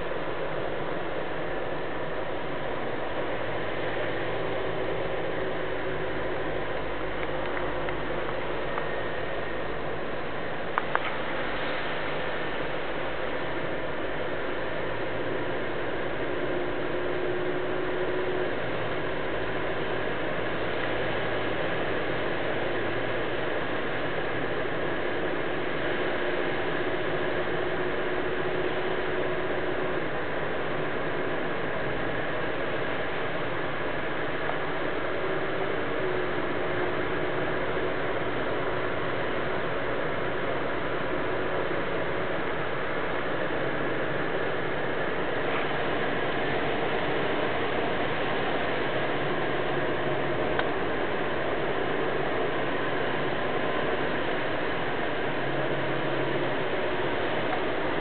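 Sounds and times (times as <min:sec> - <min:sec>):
low engine hum: 0:00.0 - 0:58.0
tyre hiss on wet road: 0:00.1 - 0:58.0.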